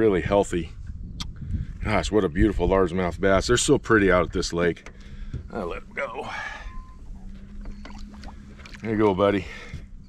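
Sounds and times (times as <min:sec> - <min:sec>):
steady low hum: 0:00.0 - 0:10.0
water splashing: 0:07.8 - 0:09.4.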